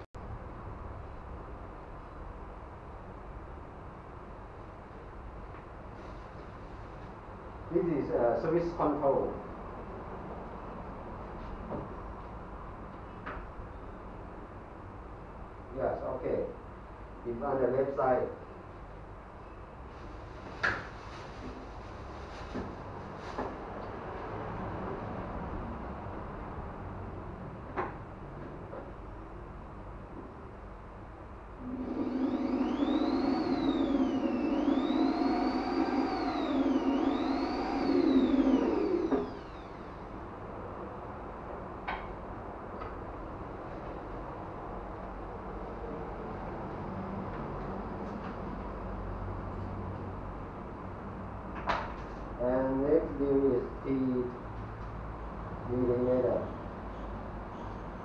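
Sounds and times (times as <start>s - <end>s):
power drill boring into wood: 31.6s - 40.1s.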